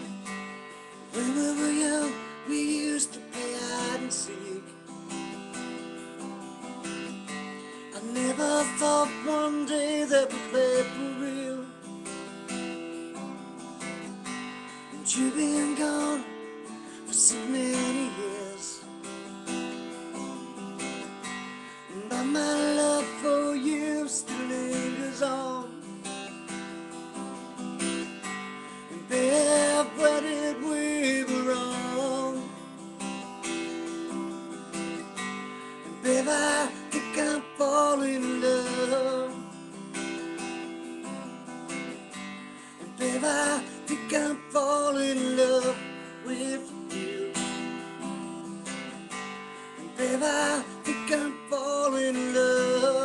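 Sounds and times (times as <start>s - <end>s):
acoustic guitar strumming: 0.0s - 53.0s.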